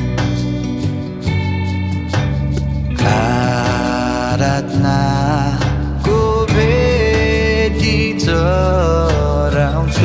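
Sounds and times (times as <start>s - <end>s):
sustained instrumental backing: 0.0s - 10.0s
person singing worship song: 3.0s - 10.0s.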